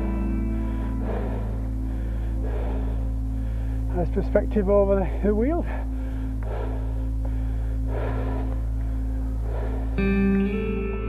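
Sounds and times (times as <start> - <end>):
cyclist breathing hard: 0.0 - 11.0
low hum: 0.0 - 11.0.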